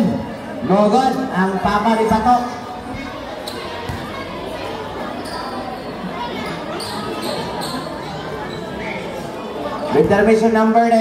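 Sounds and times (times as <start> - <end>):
crowd chatter: 0.0 - 11.0
basketball bouncing on concrete: 3.8 - 4.2.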